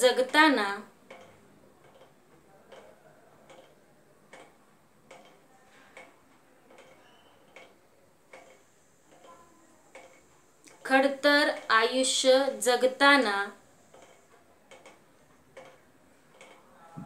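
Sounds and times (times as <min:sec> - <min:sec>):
faint regular ticking: 0:00.0 - 0:17.0.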